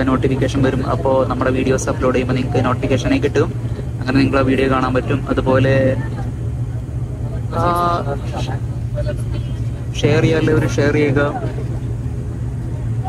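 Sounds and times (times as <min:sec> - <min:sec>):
turboprop engine drone: 0:00.0 - 0:13.0
voices talking: 0:00.0 - 0:13.0.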